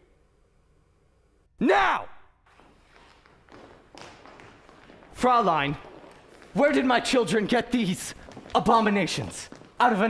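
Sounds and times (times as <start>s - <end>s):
faint footsteps on stage floor: 2.5s - 10.0s.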